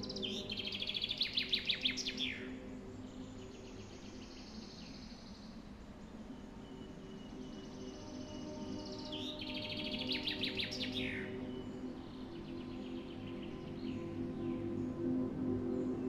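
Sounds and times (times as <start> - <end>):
ambient music drone: 0.0 - 16.0.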